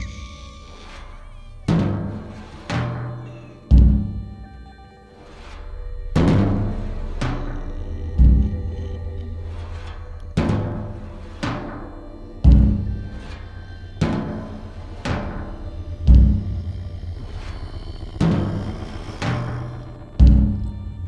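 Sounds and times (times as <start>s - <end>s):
steady low drone: 0.0s - 21.0s
deep booming drum hits: 1.7s - 4.3s, 6.2s - 21.0s.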